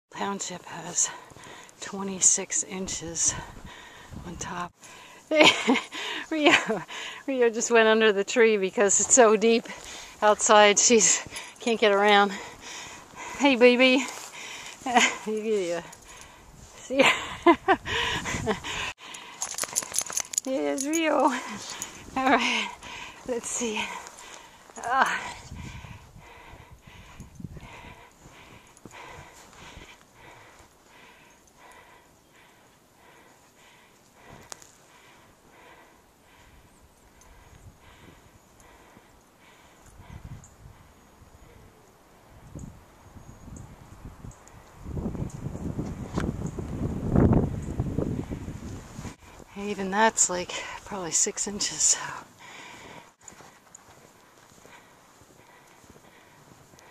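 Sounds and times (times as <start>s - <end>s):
dog collar tags jingling: 11.1s - 12.1s, 19.0s - 22.4s
footsteps crunching through snow: 12.5s - 17.1s, 51.5s - 56.9s.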